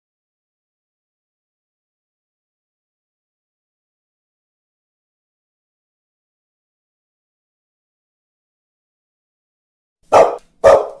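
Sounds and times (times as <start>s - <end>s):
dog barking: 10.1s - 11.0s.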